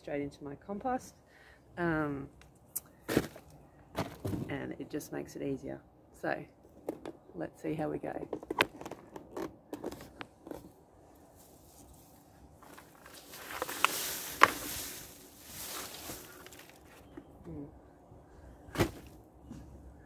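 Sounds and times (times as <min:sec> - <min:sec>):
rustling of plastic soil and leaves: 0:09.9 - 0:17.4.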